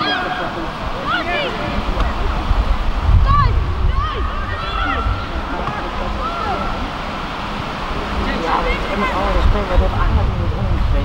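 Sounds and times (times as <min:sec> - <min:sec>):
wind rumble on microphone: 0:01.6 - 0:06.9, 0:07.8 - 0:11.0
distant players shouting: 0:03.2 - 0:07.1.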